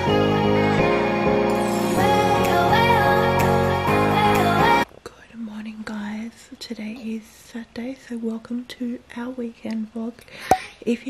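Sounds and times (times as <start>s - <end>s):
woman talking in hushed voice: 5.1s - 11.0s.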